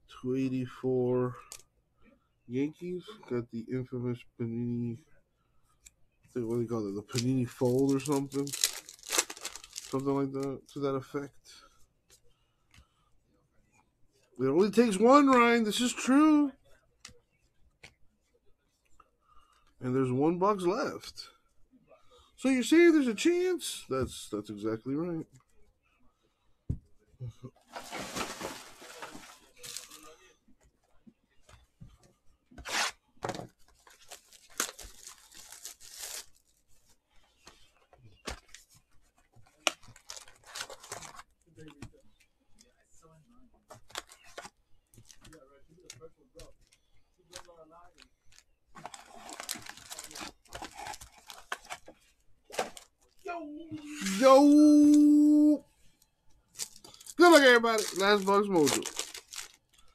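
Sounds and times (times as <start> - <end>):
cards and foil wrappers rustling: 6.4 - 10.7, 27.6 - 30.2, 32.6 - 38.8, 39.5 - 41.4, 43.7 - 53.2, 53.9 - 55.6, 56.5 - 59.9.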